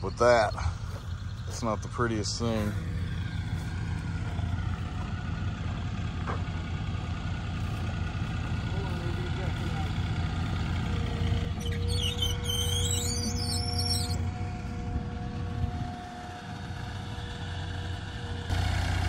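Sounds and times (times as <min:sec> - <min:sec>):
forklift engine running: 0:00.0 - 0:19.0.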